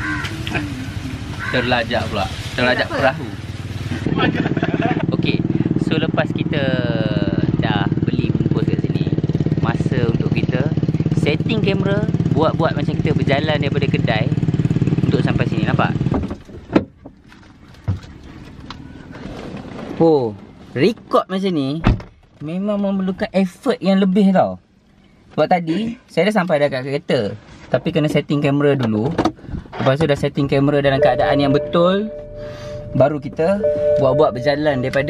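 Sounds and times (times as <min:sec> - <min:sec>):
faint low rumble: 0:30.8 - 0:35.0.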